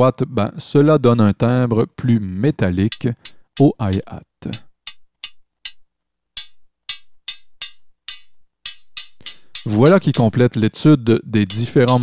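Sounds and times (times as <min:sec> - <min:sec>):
synthesized metallic hi-hat hits: 0:06.4 - 0:10.4, 0:11.5 - 0:12.0.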